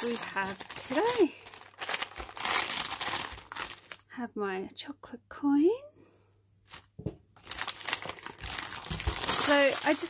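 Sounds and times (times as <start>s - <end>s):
wrapping paper tearing and crinkling: 0.0s - 4.1s, 6.7s - 10.0s.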